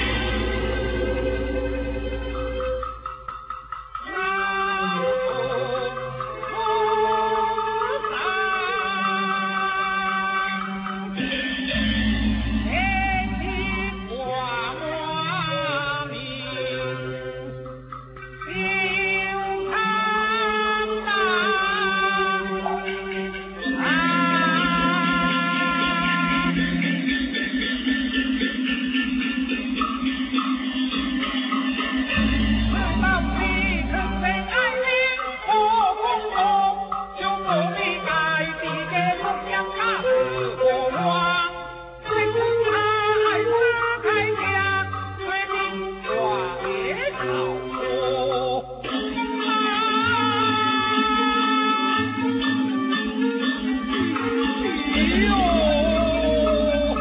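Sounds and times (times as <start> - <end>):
sustained pitched notes: 0.0 - 3.5, 26.0 - 35.9
opera instrumental accompaniment: 0.0 - 57.0
plucked strings: 16.9 - 40.4.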